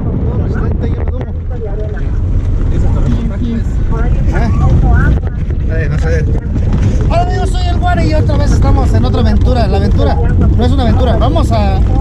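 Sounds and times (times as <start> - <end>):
car engine and road rumble: 0.0 - 12.0
wind buffeting microphone: 0.0 - 12.0.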